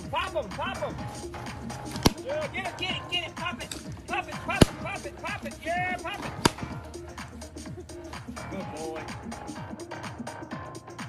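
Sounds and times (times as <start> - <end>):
voices: 0.0 - 9.5
background music: 0.0 - 11.0
balloon bursting: 1.8 - 2.3, 6.2 - 6.9.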